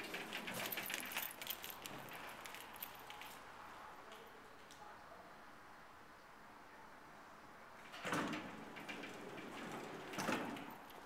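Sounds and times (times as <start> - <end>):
elevator doors sliding clatter: 0.0 - 3.0, 7.8 - 11.0.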